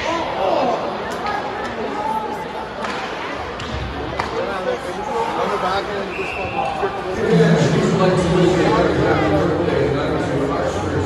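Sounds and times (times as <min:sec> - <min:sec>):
spectators talking: 0:00.0 - 0:11.0.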